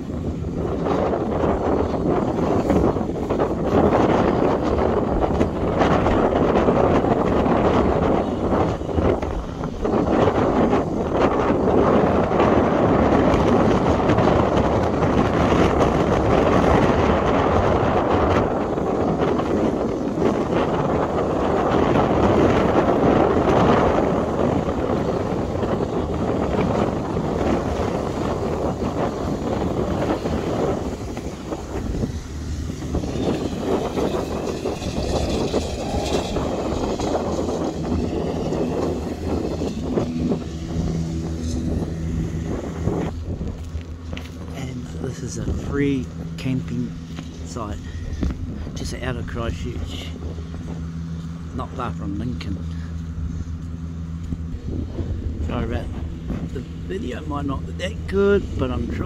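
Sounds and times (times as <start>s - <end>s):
wind buffeting microphone: 0.0s - 59.0s
low steady hum: 16.1s - 59.0s.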